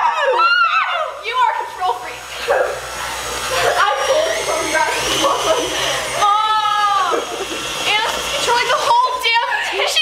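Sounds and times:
girls shrieking and laughing: 0.0 - 2.0, 3.4 - 10.0
electric stand mixer hum: 0.0 - 10.0.

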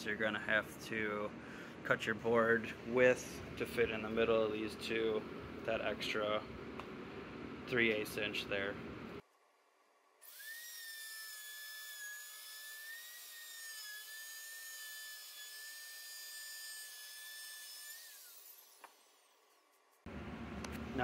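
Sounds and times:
router motor whining: 10.2 - 19.7.

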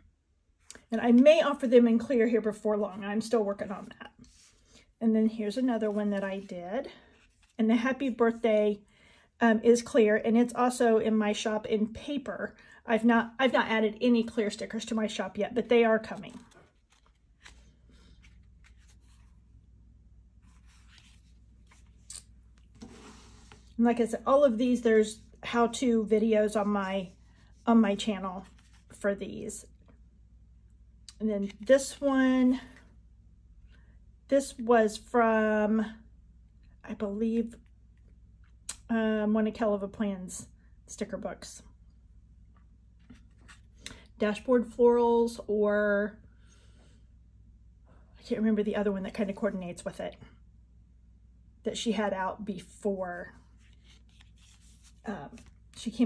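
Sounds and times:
cards rustling and ticking: 16.1 - 19.2, 53.6 - 55.8.

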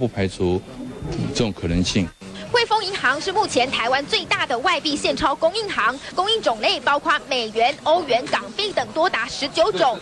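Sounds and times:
man speaking: 0.0 - 2.2.

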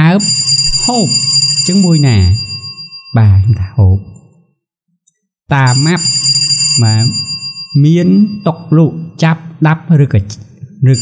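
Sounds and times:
person speaking: 0.0 - 4.4, 5.5 - 11.0
high-pitched ringing tone: 5.7 - 9.2.

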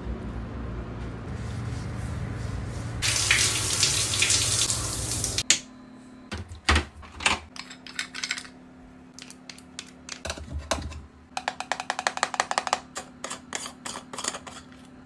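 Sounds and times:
fingernails tapping on containers: 10.1 - 13.7.

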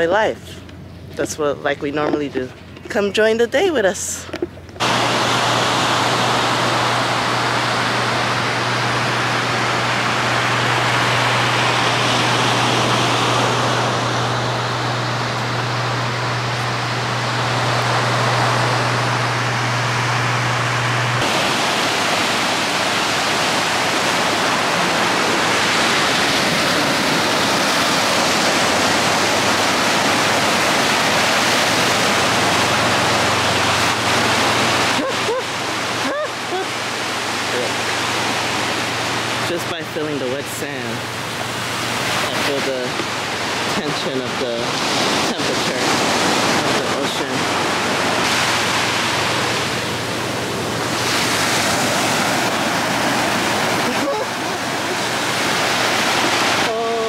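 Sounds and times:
ocean surf breaking on beach: 4.8 - 57.0.

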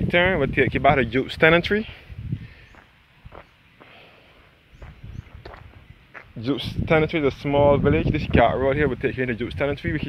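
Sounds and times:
footsteps on paved road: 2.6 - 6.6.

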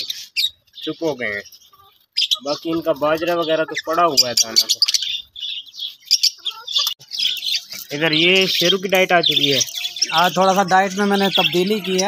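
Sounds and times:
budgerigars chattering and chirping: 0.0 - 12.0.

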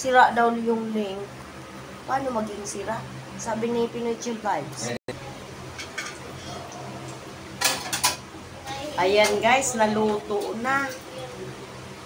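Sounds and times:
cutlery clattering on a plate: 5.8 - 6.2, 7.6 - 8.2.

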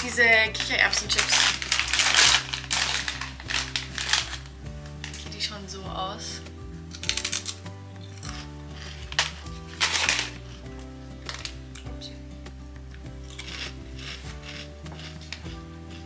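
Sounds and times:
background music: 0.0 - 16.0
chips crunching while chewed: 1.0 - 5.2, 6.9 - 10.7, 13.1 - 16.0.

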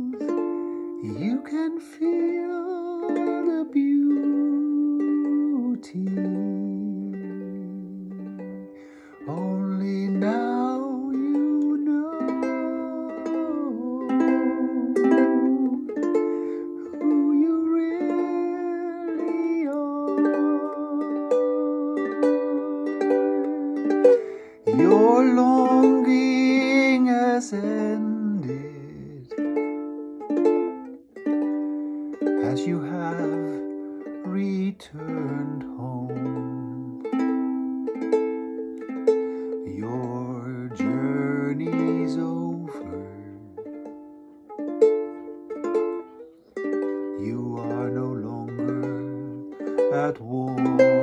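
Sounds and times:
man singing: 0.0 - 29.4, 32.2 - 37.2, 39.4 - 43.7, 47.1 - 51.0
plucked string instrument: 0.0 - 51.0.

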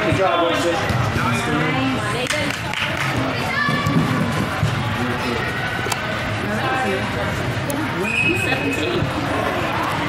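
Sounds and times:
voices echoing in sports hall: 0.0 - 10.0
referee's whistle: 8.0 - 9.0.

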